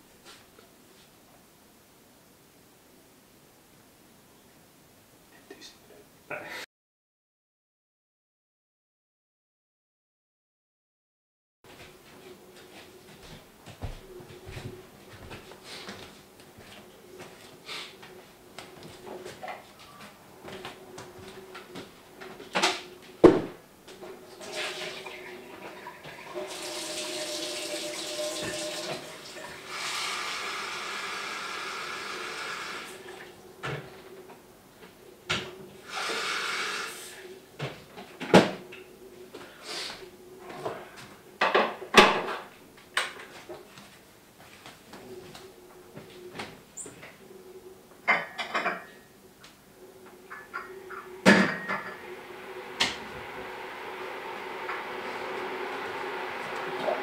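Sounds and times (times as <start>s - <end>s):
cupboard door banging shut: 23.2s - 23.6s
tap running into sink: 26.1s - 29.1s.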